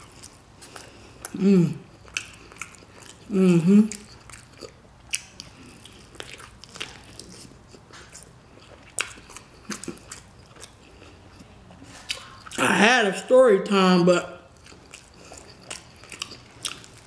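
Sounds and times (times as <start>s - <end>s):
person chewing meat: 0.0s - 12.8s, 14.4s - 17.0s.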